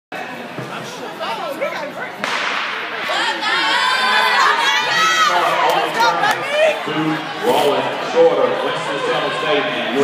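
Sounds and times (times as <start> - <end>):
spectators chattering: 0.1 - 10.0.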